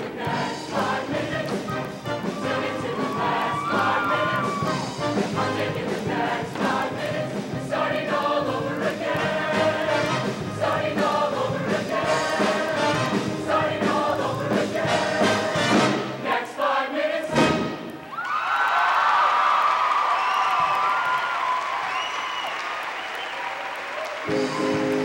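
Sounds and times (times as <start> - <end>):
choir singing with band: 0.0 - 18.0
audience cheering and applauding: 0.6 - 5.6, 17.9 - 25.0
high-pitched screams: 2.4 - 4.9.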